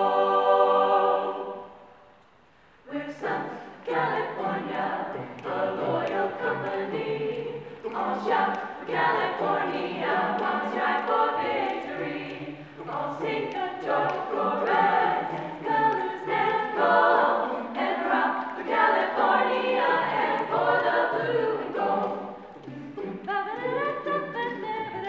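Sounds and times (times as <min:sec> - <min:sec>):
a cappella choir singing in harmony: 0:00.0 - 0:02.1, 0:02.8 - 0:25.0
sharp clicks keeping time: 0:04.6 - 0:16.9.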